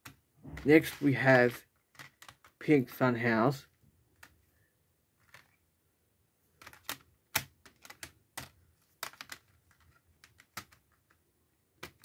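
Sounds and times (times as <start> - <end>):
plastic cases clicking: 6.6 - 11.2.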